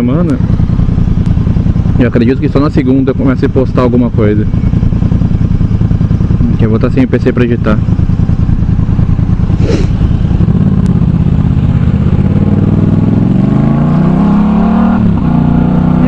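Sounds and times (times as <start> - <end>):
motorcycle engine revving: 0.0 - 16.0.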